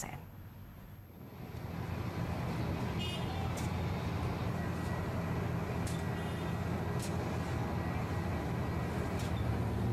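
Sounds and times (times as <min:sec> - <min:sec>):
machinery engine rumble: 0:00.6 - 0:09.9.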